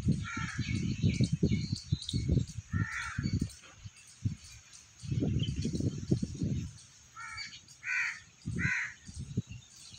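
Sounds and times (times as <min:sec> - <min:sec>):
crow cawing: 0:07.2 - 0:09.0.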